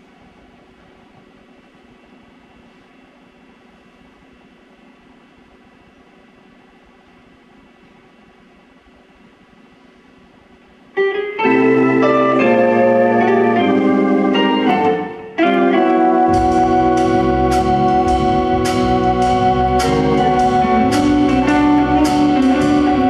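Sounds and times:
electric organ chords: 11.0 - 23.0
bass guitar: 11.4 - 23.0.

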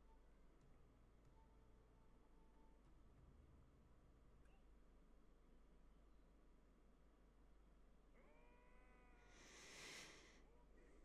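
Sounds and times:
soft hiss: 9.1 - 11.0.

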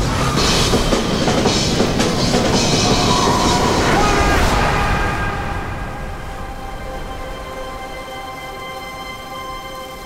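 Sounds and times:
loud rumbling and rushing noise: 0.0 - 9.0
dramatic trailer music: 0.0 - 10.0.

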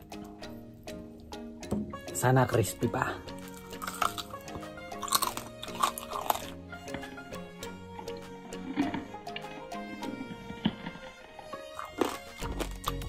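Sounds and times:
background music: 0.0 - 13.0
chewing: 3.5 - 6.6, 10.7 - 13.0.

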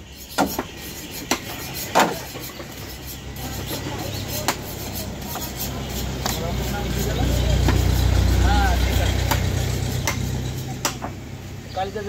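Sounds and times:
vehicle engine rumbling: 0.0 - 12.0
knife chopping on wooden block: 0.3 - 2.7, 3.8 - 6.4, 9.2 - 11.1.

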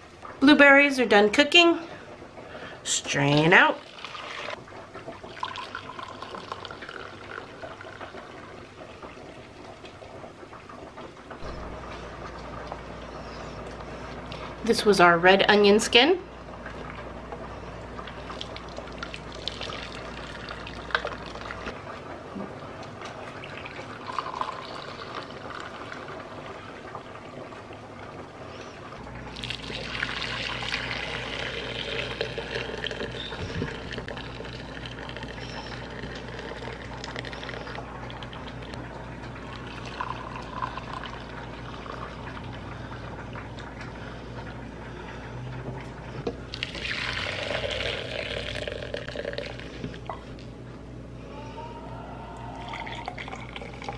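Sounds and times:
liquid trickling into a jug: 3.8 - 9.5, 18.0 - 21.7, 23.4 - 26.8, 29.3 - 43.8, 46.4 - 50.4, 52.6 - 53.9.

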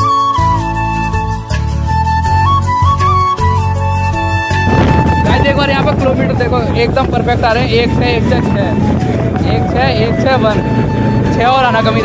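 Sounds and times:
wind on microphone: 4.2 - 12.0
motorcycle engine running: 4.7 - 8.2.

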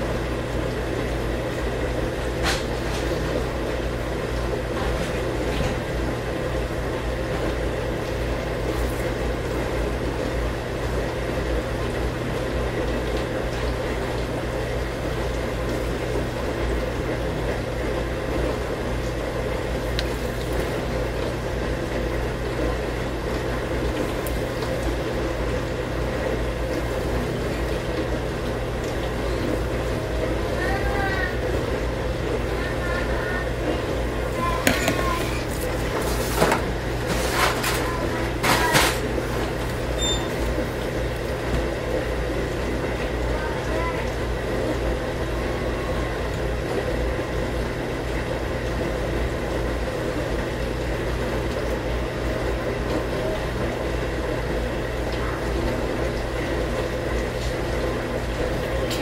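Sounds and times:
steady mechanical hum: 0.0 - 59.0.

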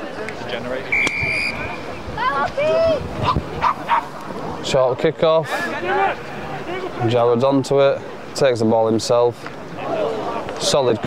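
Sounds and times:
referee's whistle blast: 0.9 - 1.8.

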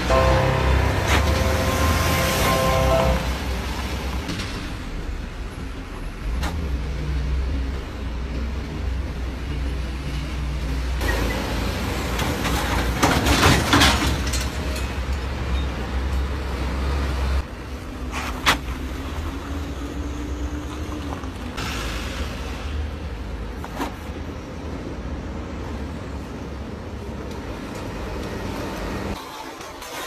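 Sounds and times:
car engine and tyre noise: 0.0 - 30.0.

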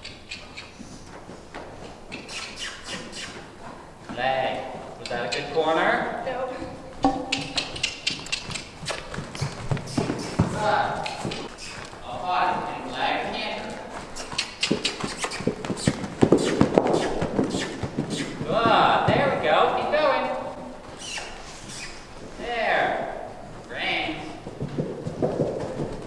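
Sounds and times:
horse hoofbeats on dirt: 0.0 - 26.0
person's voice: 10.5 - 11.3, 12.0 - 13.9, 18.4 - 20.6, 22.4 - 24.4.

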